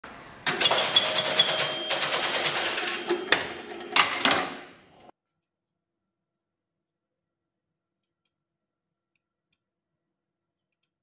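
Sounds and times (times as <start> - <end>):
rapid mechanical clicking: 0.5 - 3.4.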